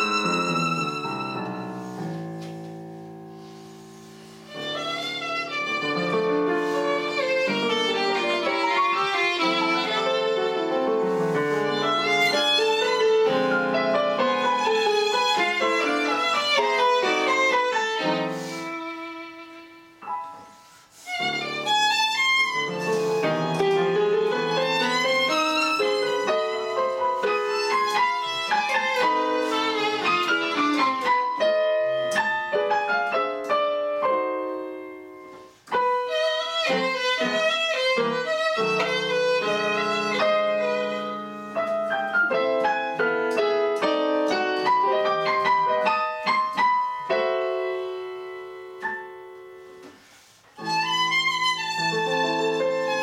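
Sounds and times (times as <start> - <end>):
digital piano: 0.0 - 53.0
violin: 0.0 - 53.0.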